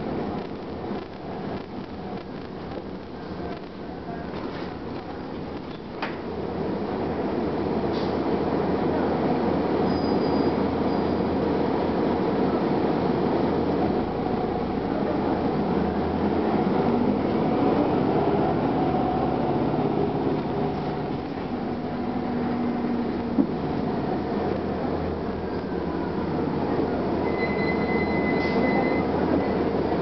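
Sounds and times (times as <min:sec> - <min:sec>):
road and body rumble: 0:10.6 - 0:27.3
bus engine running: 0:10.7 - 0:27.3.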